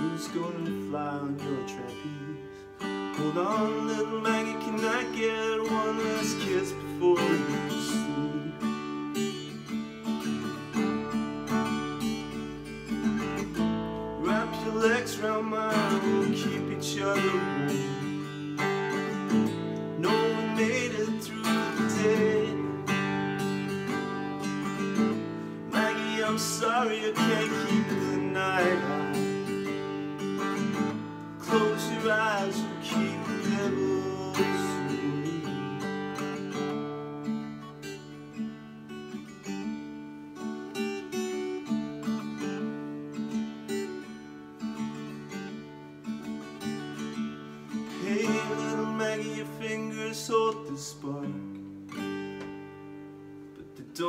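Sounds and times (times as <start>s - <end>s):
man singing: 0.0s - 9.2s, 13.0s - 36.6s, 47.9s - 51.6s, 53.6s - 54.0s
acoustic guitar strummed: 0.0s - 54.0s.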